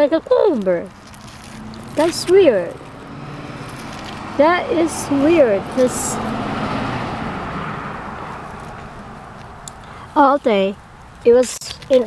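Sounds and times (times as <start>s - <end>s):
car passing by: 1.1s - 10.0s.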